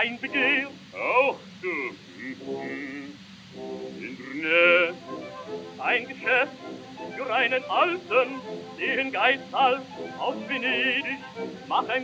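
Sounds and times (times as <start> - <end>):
faint record hiss: 0.0 - 12.0
man singing opera with vibrato: 0.0 - 12.0
orchestral accompaniment: 2.1 - 12.0.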